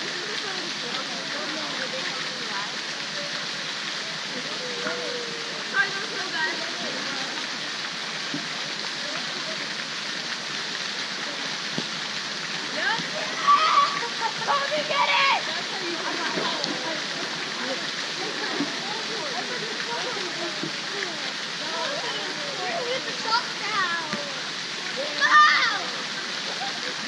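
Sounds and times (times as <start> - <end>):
voices: 0.0 - 11.8, 12.4 - 27.0
fountain water pouring into pool: 0.0 - 27.0.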